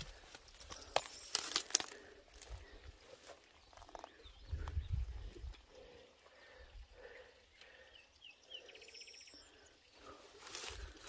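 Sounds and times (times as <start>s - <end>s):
small bird chirping: 0.4s - 11.0s
wind rumble: 4.4s - 5.6s.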